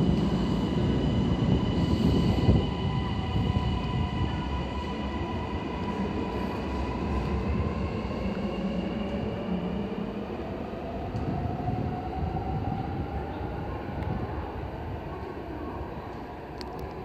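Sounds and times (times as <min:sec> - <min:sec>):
train rumbling and whining: 0:00.0 - 0:17.0.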